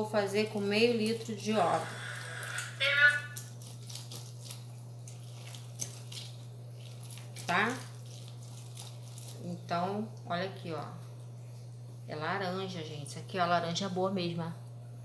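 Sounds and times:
steady low hum: 0.0 - 15.0
orange squelching on juicer: 0.4 - 10.3
person speaking: 2.7 - 3.4.

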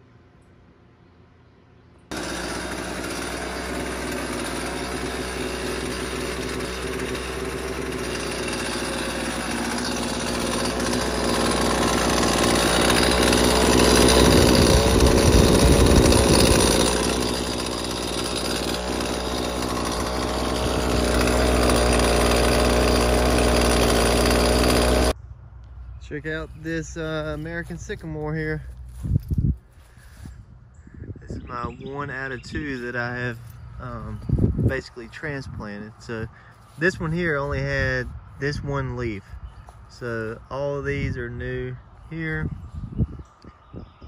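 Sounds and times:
string trimmer engine running: 2.1 - 30.3, 31.5 - 38.8.

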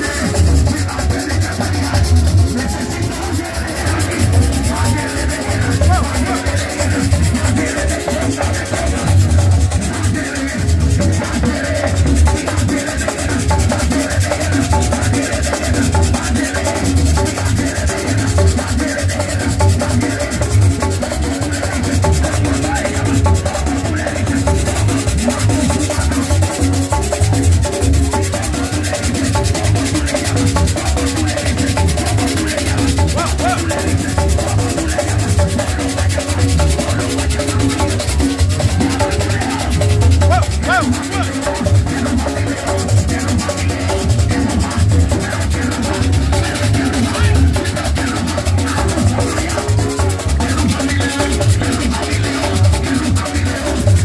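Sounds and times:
scraped percussion rhythm: 0.0 - 54.0
worship music with heavy bass: 0.0 - 54.0.

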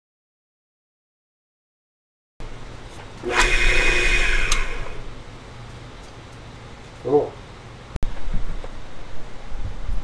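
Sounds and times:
drill press motor hum: 3.0 - 5.3
sandpaper sanding hiss with whine: 3.2 - 5.2.

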